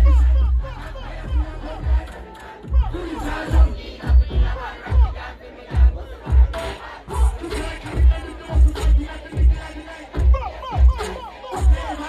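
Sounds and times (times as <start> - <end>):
crowd shouting and singing along: 0.0 - 12.0
dancehall music on sound system: 0.0 - 12.0
heavy bass beat thumping: 0.0 - 12.0.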